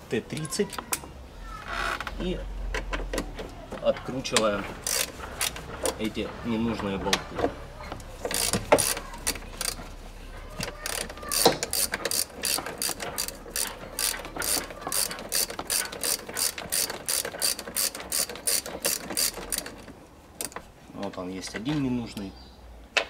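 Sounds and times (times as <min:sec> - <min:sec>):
socket ratchet clicking: 0:04.8 - 0:06.0, 0:08.2 - 0:09.8, 0:10.6 - 0:20.6.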